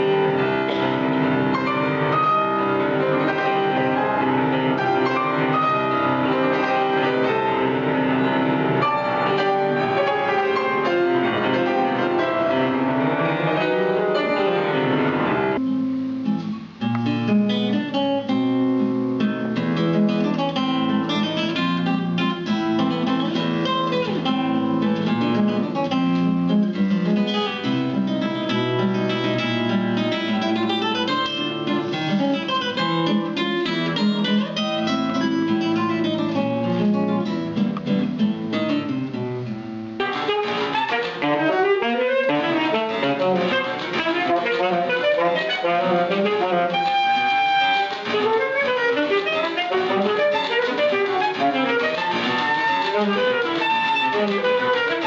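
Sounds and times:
saxophone: 0:00.0 - 0:16.8, 0:29.0 - 0:37.2, 0:39.9 - 0:55.0
classical guitar plucked: 0:00.0 - 0:55.0
piano accompaniment: 0:00.0 - 0:55.0.

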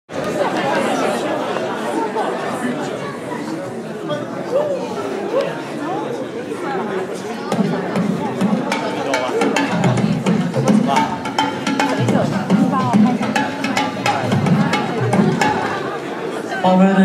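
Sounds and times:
audience chatter: 0:00.1 - 0:17.0.

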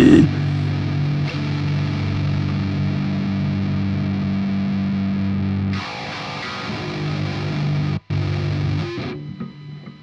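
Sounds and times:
distorted electric guitar riff: 0:00.0 - 0:09.6.

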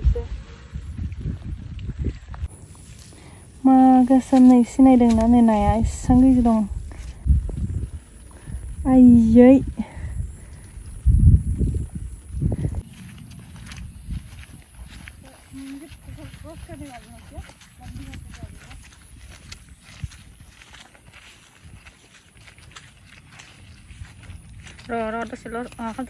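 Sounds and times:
footsteps through wet grass: 0:00.0 - 0:26.0.

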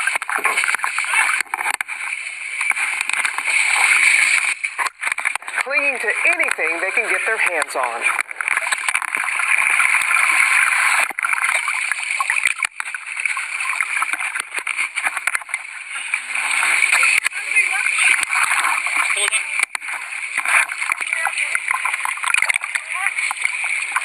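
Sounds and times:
water splashing and sloshing: 0:00.0 - 0:24.0
indistinct voices: 0:05.6 - 0:08.2.

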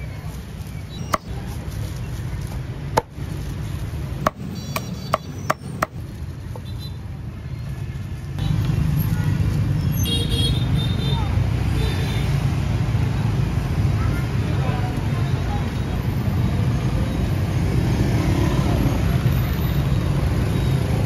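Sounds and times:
low rumble of street traffic: 0:00.0 - 0:21.0
cleaver chopping on a block: 0:01.0 - 0:01.3, 0:04.2 - 0:06.0.

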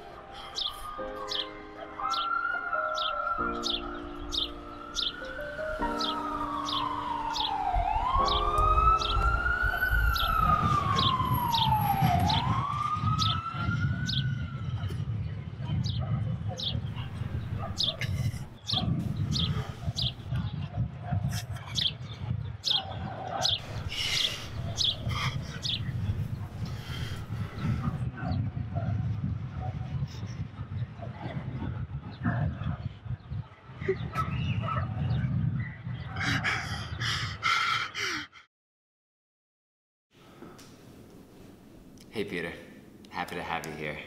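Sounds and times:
birds chirping: 0:00.4 - 0:12.5, 0:13.1 - 0:14.4, 0:15.3 - 0:20.4, 0:21.6 - 0:28.3.

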